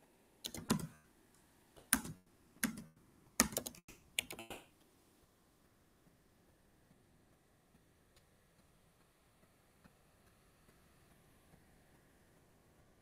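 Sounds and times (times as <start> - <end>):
keyboard typing: 0.4 - 1.0, 1.8 - 4.7.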